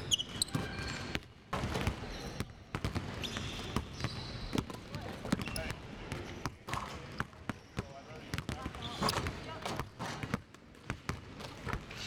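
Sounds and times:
basketballs bouncing on hardwood: 1.6 - 11.8.

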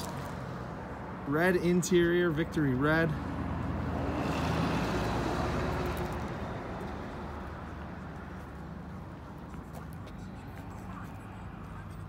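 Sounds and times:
low traffic rumble: 0.0 - 12.0
passing vehicles rushing: 0.0 - 12.0.

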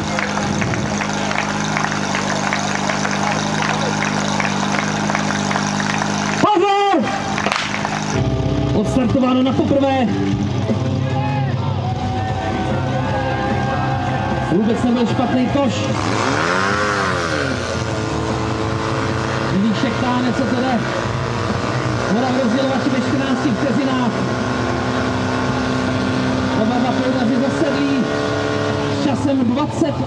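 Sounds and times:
pump engine running: 0.0 - 8.9, 14.5 - 30.0
people shouting: 11.2 - 16.5.

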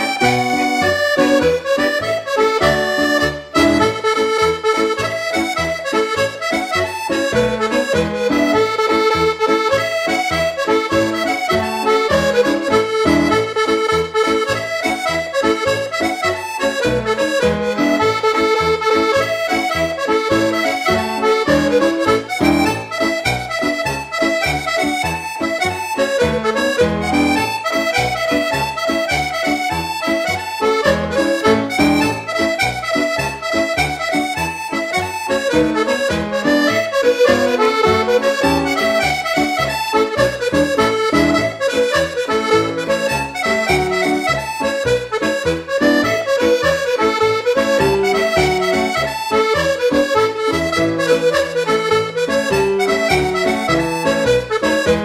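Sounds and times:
accordion march: 0.0 - 55.0.

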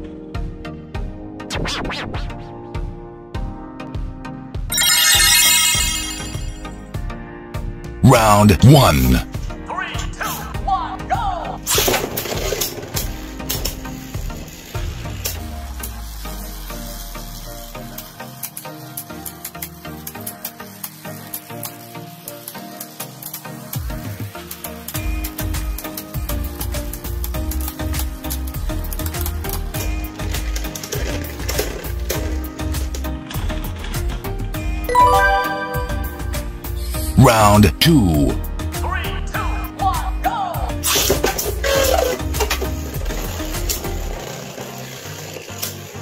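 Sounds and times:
spinning tops grinding and clattering: 4.7 - 6.7
backing music: 8.0 - 9.2, 34.9 - 38.4.

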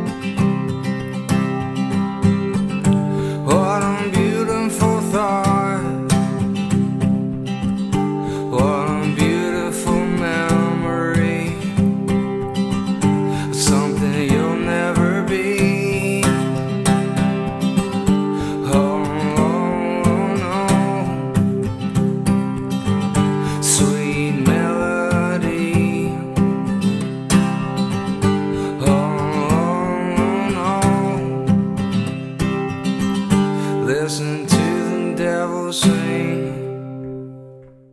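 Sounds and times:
man singing wordless melody: 0.0 - 1.6, 2.9 - 6.8, 8.2 - 32.1, 33.2 - 37.4
acoustic guitar strumming: 0.0 - 37.9.

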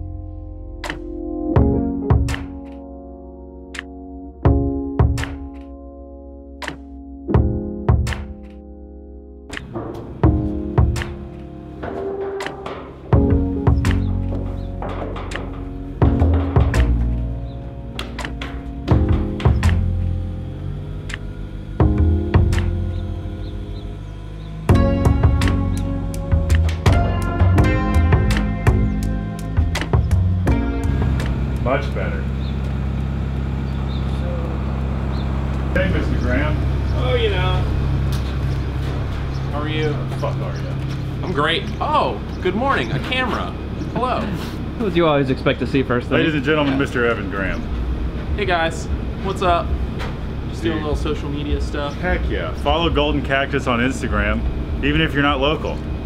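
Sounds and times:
drum hits: 0.8 - 2.6, 4.5 - 5.5, 7.4 - 8.4, 9.5 - 17.4, 18.0 - 20.0
held music notes: 9.5 - 56.0
forklift engine idling: 9.6 - 54.8.

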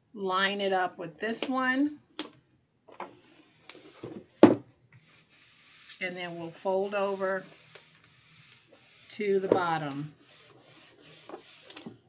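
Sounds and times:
hands pressing paper on cardboard: 5.0 - 11.9.

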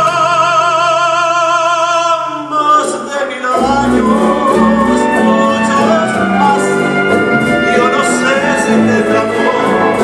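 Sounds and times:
man singing: 0.0 - 10.0
acoustic guitar: 2.8 - 10.0
chamber orchestra playing: 3.5 - 10.0.

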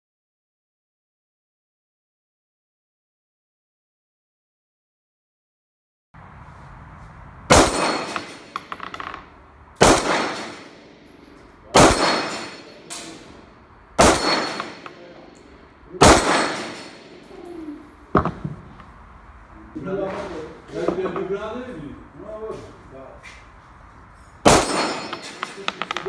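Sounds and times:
pistol shots: 7.5 - 8.8, 9.8 - 13.4, 14.0 - 15.4, 16.0 - 17.3, 24.4 - 26.0
steel plate clang: 7.5 - 9.0, 10.0 - 15.3, 16.1 - 17.4, 24.4 - 26.0
short metallic rattle: 7.6 - 9.3, 24.1 - 26.0.

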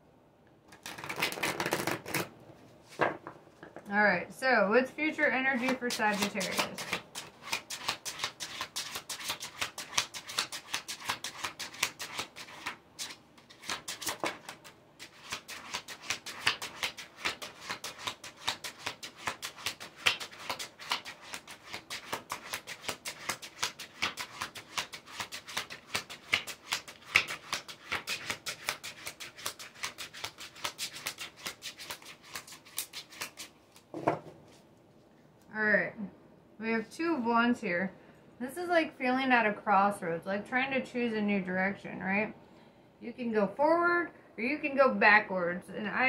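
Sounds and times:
cards being shuffled: 0.7 - 2.3, 5.5 - 34.7.

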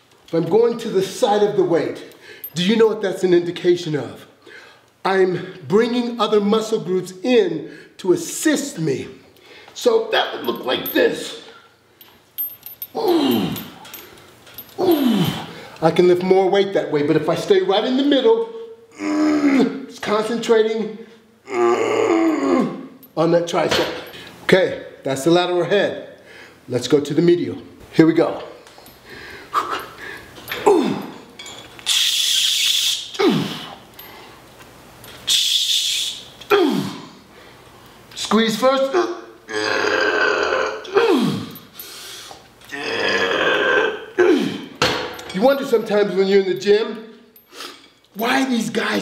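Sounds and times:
man groaning with effort: 12.9 - 13.9, 14.8 - 15.6, 18.9 - 19.9, 21.5 - 22.9, 30.5 - 31.3, 33.2 - 33.8, 36.5 - 37.2, 39.5 - 41.6, 42.7 - 44.8.

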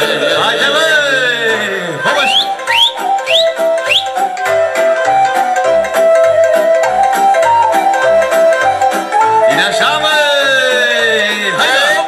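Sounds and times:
instrumental folk music: 0.0 - 12.0
short rising whistles: 2.2 - 4.2.

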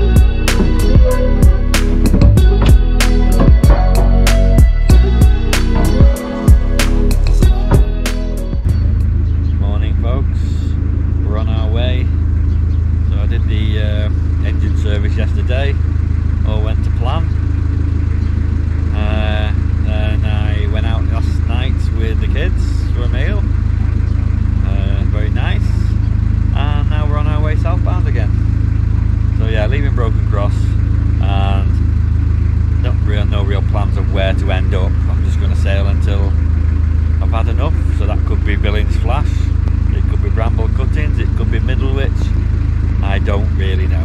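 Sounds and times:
boat diesel engine droning: 0.0 - 44.0
man's voice: 2.3 - 8.1, 9.6 - 12.2, 13.1 - 15.8, 16.4 - 17.3, 18.9 - 23.5, 24.6 - 28.4, 29.4 - 31.8, 32.8 - 36.4, 37.2 - 42.4, 43.0 - 44.0.

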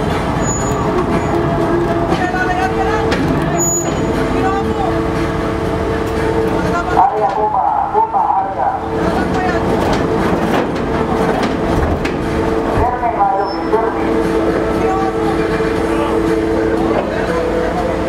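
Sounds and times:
ship machinery rumble: 0.0 - 18.0.

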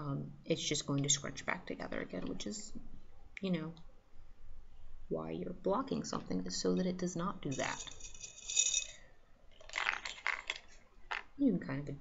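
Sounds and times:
scratchy rustle: 7.5 - 8.9
metal pins clinking: 7.5 - 9.0.

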